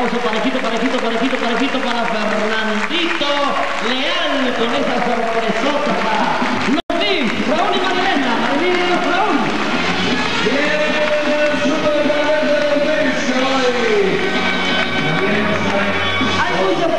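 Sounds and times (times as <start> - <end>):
band music: 0.0 - 16.9
crowd noise: 0.0 - 16.9.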